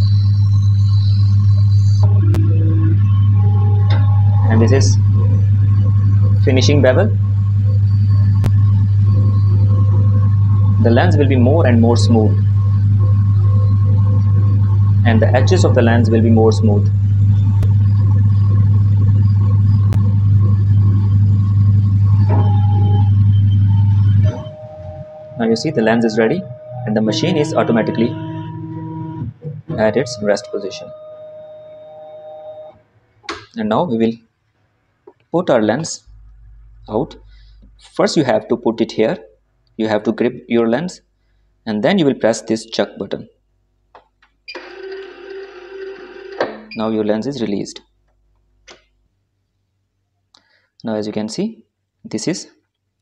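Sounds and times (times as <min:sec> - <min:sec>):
machine whine: 0:00.0 - 0:33.8, 0:44.5 - 0:47.4.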